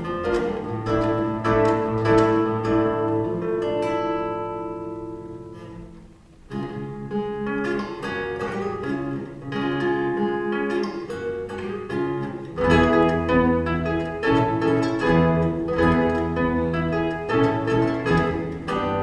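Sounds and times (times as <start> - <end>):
classical guitar: 0.0 - 19.0
harp plucked notes: 12.5 - 19.0.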